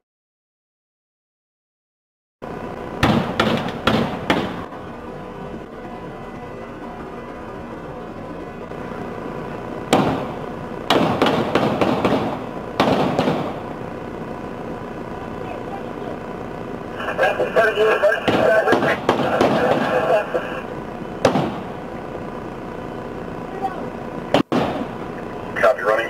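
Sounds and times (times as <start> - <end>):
loud bursts: 2.4 - 5.8, 8.8 - 26.0.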